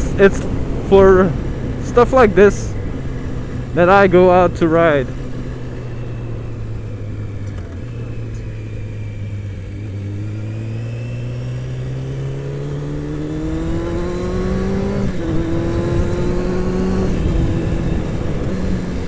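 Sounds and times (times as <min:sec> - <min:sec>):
motorcycle engine accelerating: 0:00.0 - 0:19.0
wind rush on helmet: 0:12.8 - 0:19.0.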